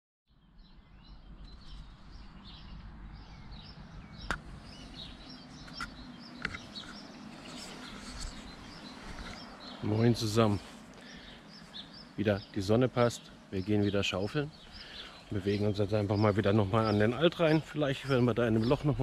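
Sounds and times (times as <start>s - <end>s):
low outdoor background: 0.3s - 19.0s
songbirds chirping: 0.3s - 19.0s
man's voice: 12.2s - 14.5s, 15.3s - 19.0s.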